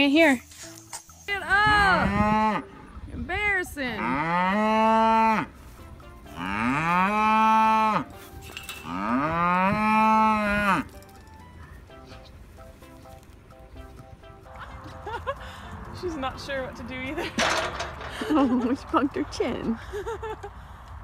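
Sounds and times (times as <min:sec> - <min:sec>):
animal mooing: 0:08.8 - 0:10.9.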